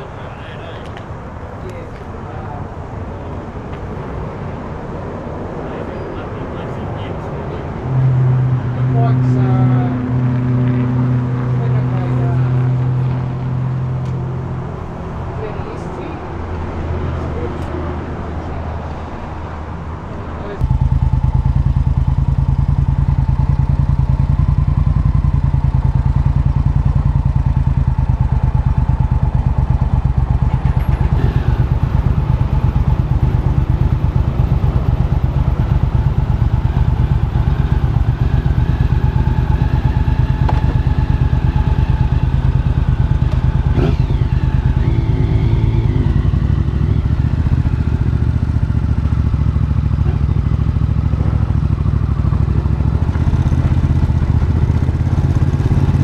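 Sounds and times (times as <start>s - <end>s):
motorcycle engine running: 20.6s - 56.0s.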